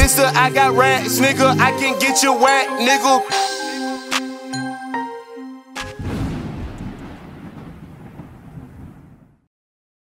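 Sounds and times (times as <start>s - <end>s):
thunder clap and rumble: 5.8s - 9.5s.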